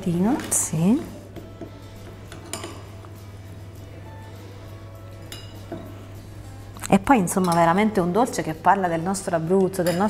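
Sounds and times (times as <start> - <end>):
quiet background music: 0.0 - 10.0
spoon clinking on porcelain bowl: 2.3 - 3.0, 5.2 - 5.9, 9.8 - 10.0.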